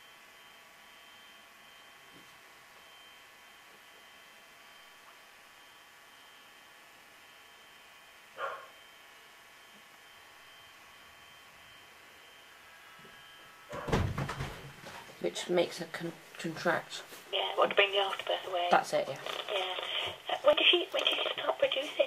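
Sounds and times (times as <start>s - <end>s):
faint steady hum: 0.0s - 22.0s
knocks and rustling: 13.7s - 15.2s.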